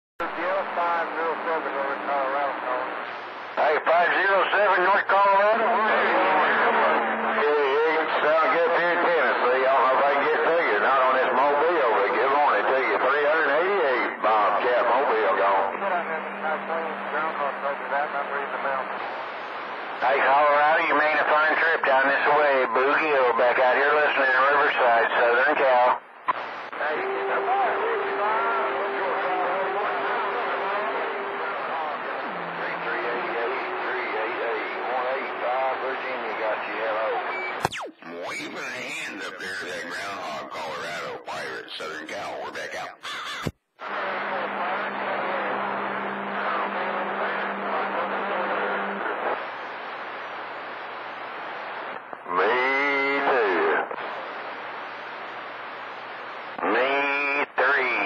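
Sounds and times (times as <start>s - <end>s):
distant voices over radio: 0.2s - 58.0s
steady radio tone: 0.2s - 58.0s.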